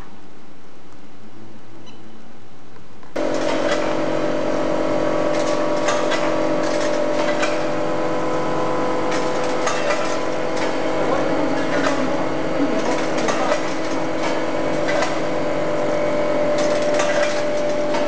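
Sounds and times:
vibratory feeder humming: 0:00.0 - 0:18.0.

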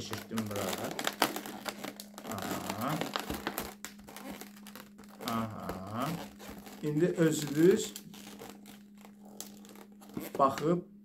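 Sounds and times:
balloon rustling and rubbing: 0:00.0 - 0:10.7
steady low hum: 0:00.0 - 0:11.0.

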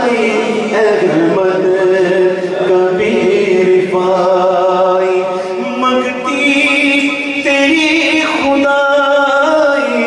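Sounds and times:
man chanting in long notes: 0:00.0 - 0:10.0.

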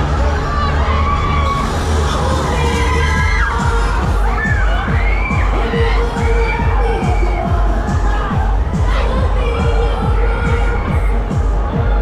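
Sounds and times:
loud dance music: 0:00.0 - 0:12.0
riders shrieking and cheering: 0:00.0 - 0:12.0.

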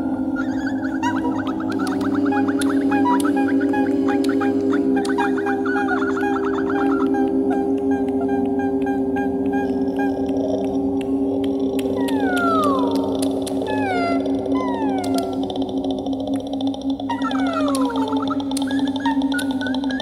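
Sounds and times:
woman's layered vocal drone: 0:00.0 - 0:20.0
sharp clicks: 0:09.4 - 0:20.0.

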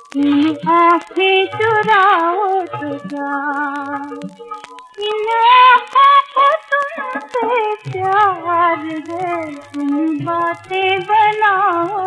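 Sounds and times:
vinyl record surface clicks: 0:00.0 - 0:12.0
woman singing with vibrato: 0:00.0 - 0:12.0.

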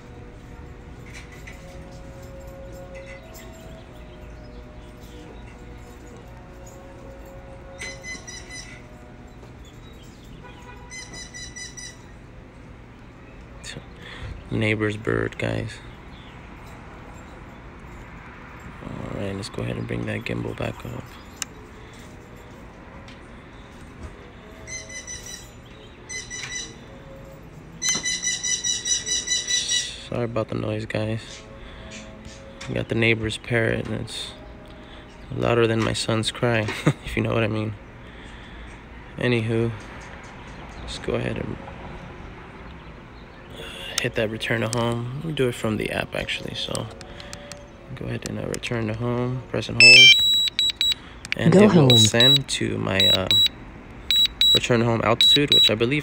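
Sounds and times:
parrot whistling: 0:49.8 - 0:51.0.

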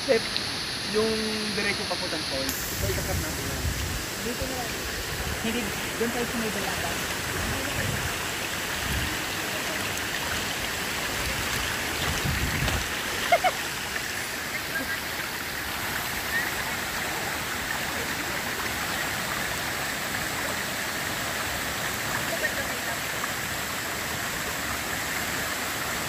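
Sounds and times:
running water rushing: 0:00.0 - 0:26.0.

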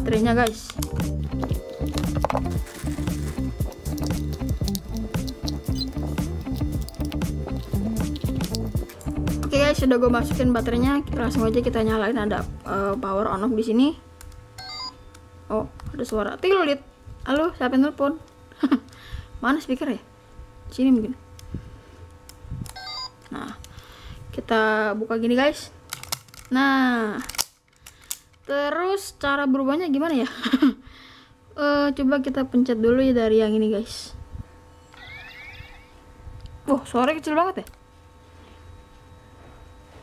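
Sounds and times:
electronic toy beep tones: 0:01.8 - 0:06.8, 0:14.6 - 0:15.0, 0:22.8 - 0:23.2, 0:34.8 - 0:35.9
plastic handling clicks: 0:25.9 - 0:26.5, 0:27.2 - 0:28.5.

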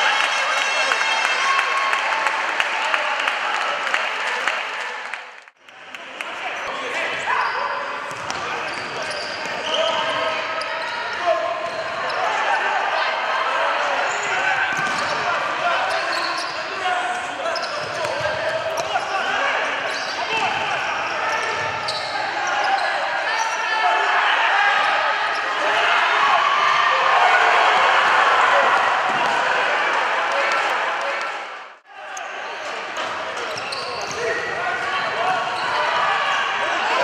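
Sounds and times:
crowd and player voices: 0:00.0 - 0:37.0.

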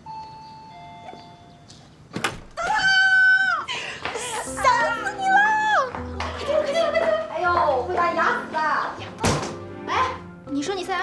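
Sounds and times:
background music: 0:03.7 - 0:11.0.

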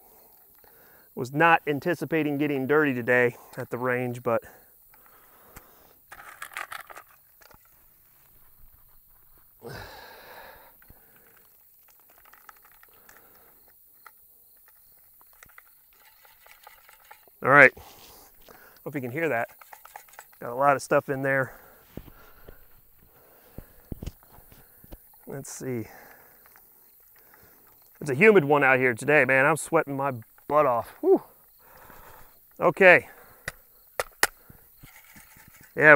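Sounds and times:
faint background hiss: 0:00.0 - 0:35.9
small ticks of grit: 0:10.7 - 0:28.3.

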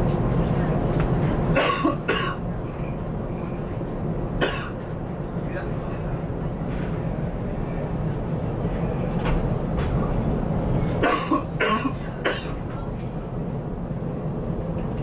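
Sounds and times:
train cab low hum: 0:00.0 - 0:15.0.

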